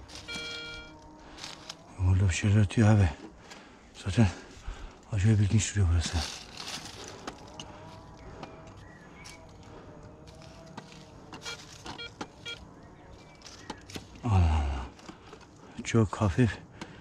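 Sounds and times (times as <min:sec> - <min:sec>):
metal detector wavering tone: 0:00.0 - 0:01.9, 0:10.4 - 0:12.7
coil clicking against rock and leaves: 0:00.0 - 0:17.0.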